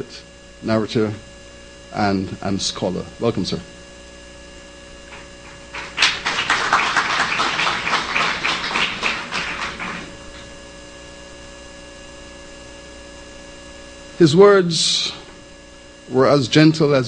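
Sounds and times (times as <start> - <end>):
mains hum: 0.0 - 17.0
audience applause: 5.1 - 10.5.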